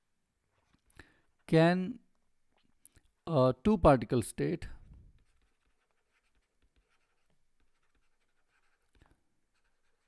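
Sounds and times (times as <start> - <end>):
stylus scratching on tablet: 5.2 - 10.0.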